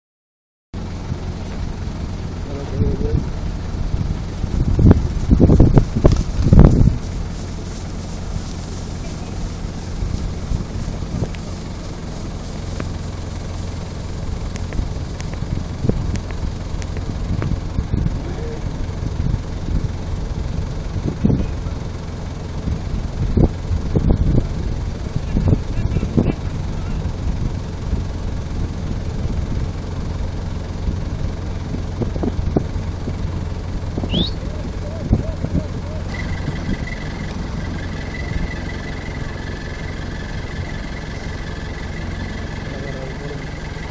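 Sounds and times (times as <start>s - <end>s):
wind buffeting microphone: 1.0s - 43.9s.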